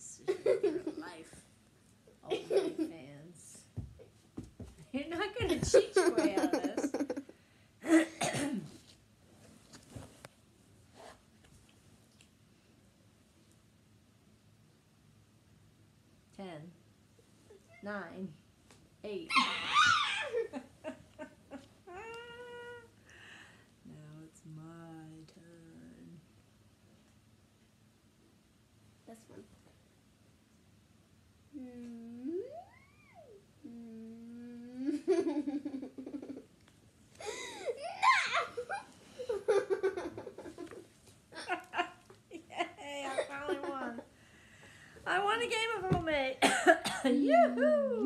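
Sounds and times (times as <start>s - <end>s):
girl and woman laughing: 0.2s - 1.1s, 5.5s - 7.3s, 19.3s - 22.8s, 34.8s - 36.5s, 37.2s - 44.1s
person laughing: 5.7s - 7.3s
high-pitched vocal squeal: 19.3s - 20.4s.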